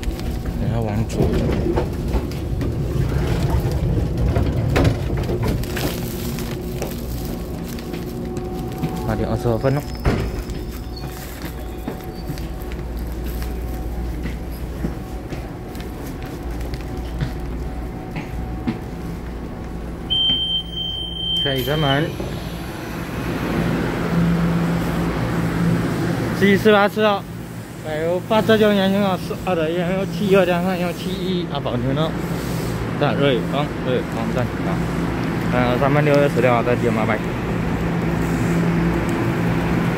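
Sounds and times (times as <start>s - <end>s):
train interior low rumble: 0.0s - 39.9s
plastic bag crackling: 3.4s - 14.2s
high steady warning tone: 19.8s - 23.4s.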